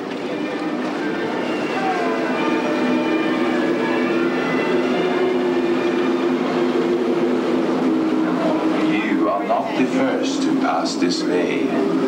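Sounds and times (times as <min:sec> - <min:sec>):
mechanical drone of low tones: 0:00.0 - 0:12.0.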